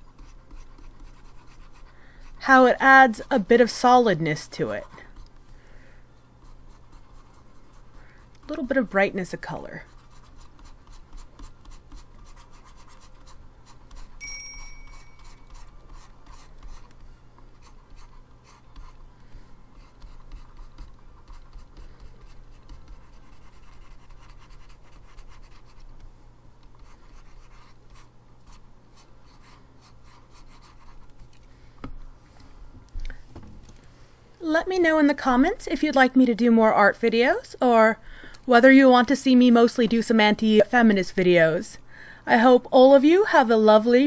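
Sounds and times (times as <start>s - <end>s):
stylus scratching on graphics tablet: 0.0s - 5.4s, 6.3s - 19.1s, 19.7s - 31.3s
steady low hum: 0.0s - 44.0s.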